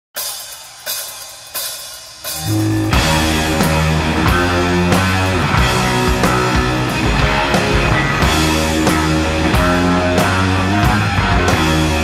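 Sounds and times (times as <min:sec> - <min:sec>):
cymbal strikes ringing: 0:02.3 - 0:04.0.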